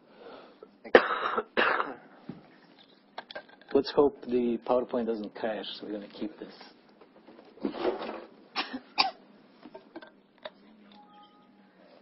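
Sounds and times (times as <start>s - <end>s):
man coughing: 0.9s - 2.1s, 8.6s - 9.2s.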